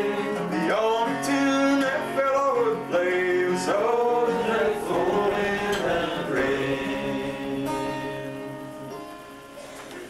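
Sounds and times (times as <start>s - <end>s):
man singing folk song: 0.0s - 8.8s
strummed acoustic guitar: 0.0s - 10.0s.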